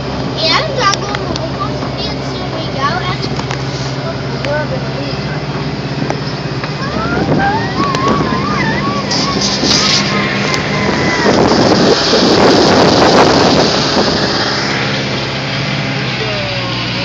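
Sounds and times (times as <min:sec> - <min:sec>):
tractor engine droning: 0:00.0 - 0:17.0
high wavering voice: 0:06.8 - 0:10.8.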